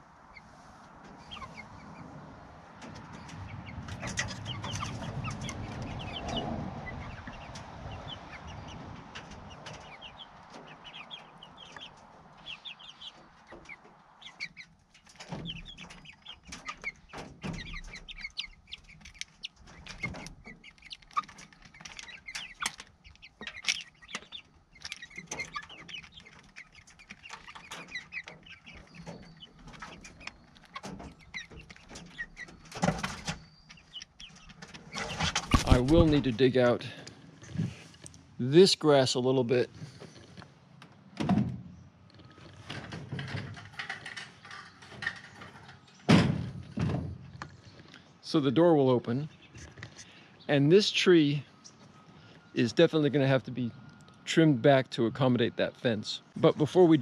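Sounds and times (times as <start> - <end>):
chicks clucking and peeping: 0.0 - 57.0
beaks pecking on metal pan: 2.8 - 36.0.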